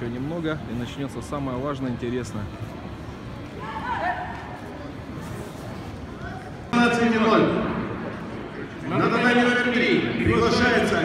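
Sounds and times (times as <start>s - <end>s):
sports hall hubbub: 0.0s - 11.0s.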